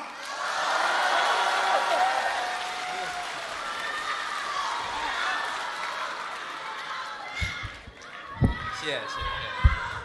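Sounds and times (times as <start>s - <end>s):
audience applauding and cheering: 0.0s - 10.0s.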